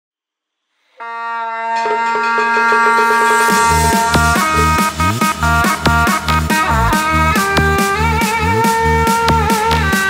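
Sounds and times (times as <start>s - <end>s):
quick repeated note: 1.0s - 7.4s
reedy wind instrument tune: 1.0s - 10.0s.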